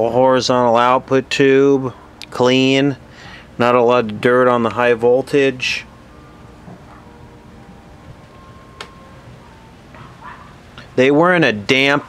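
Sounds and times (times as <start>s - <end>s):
faint held tones: 5.6s - 11.0s.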